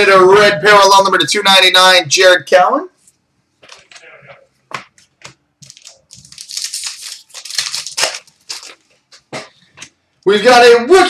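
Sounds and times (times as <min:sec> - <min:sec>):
cards being handled: 0:04.7 - 0:10.0
card pack wrapper crinkling: 0:05.6 - 0:09.3.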